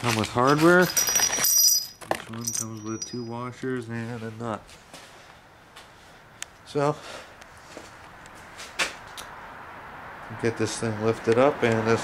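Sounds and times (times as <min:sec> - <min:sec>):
faint background noise: 0:00.0 - 0:12.0
sharp scuffing noise: 0:04.0 - 0:06.2, 0:07.1 - 0:09.2.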